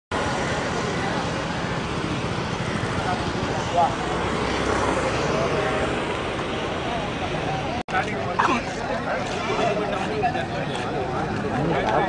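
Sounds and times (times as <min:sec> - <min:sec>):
traffic: 0:00.1 - 0:12.0.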